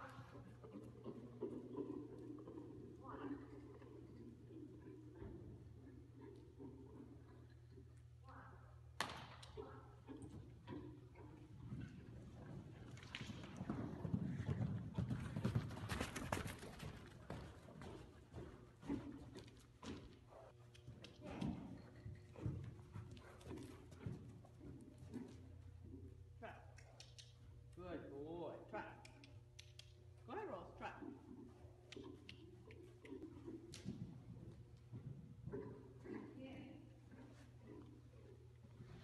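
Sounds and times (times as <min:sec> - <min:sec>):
hoofbeats on soft dirt: 0:00.0 - 0:08.0, 0:09.7 - 0:26.3, 0:31.3 - 0:39.0.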